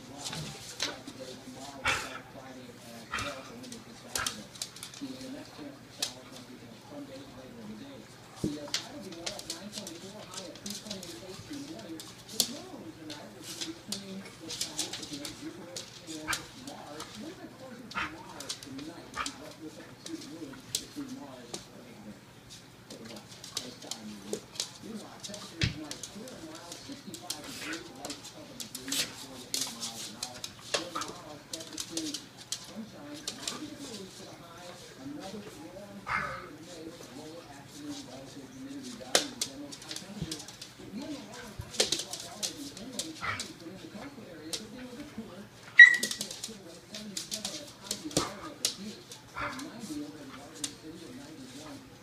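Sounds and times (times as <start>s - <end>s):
dog nails clicking on floor: 0.1s - 21.8s, 22.5s - 52.0s
dogs play growling: 0.3s - 6.1s, 14.2s - 21.0s, 34.8s - 37.4s, 39.3s - 45.8s, 47.5s - 50.6s
dogs growling: 1.7s - 2.4s, 3.0s - 4.5s, 36.0s - 36.6s, 49.2s - 49.8s.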